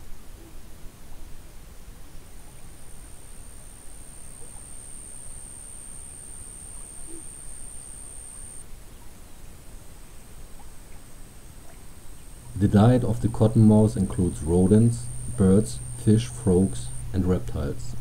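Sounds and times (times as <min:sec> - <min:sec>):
high-pitched whine: 0:02.1 - 0:08.7, 0:10.9 - 0:18.0.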